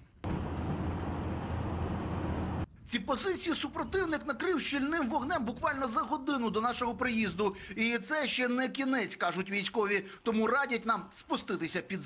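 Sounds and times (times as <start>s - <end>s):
car interior road rumble: 0.2s - 2.7s.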